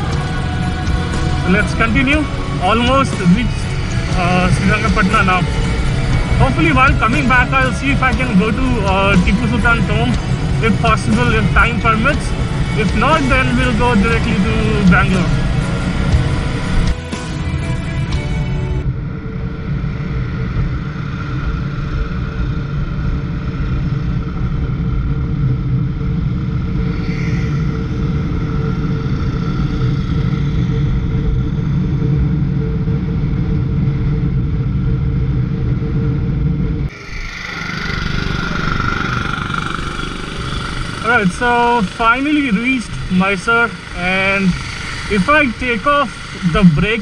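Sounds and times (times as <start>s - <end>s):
motorcycle engine rumbling: 0.0s - 47.0s
town traffic: 0.0s - 47.0s.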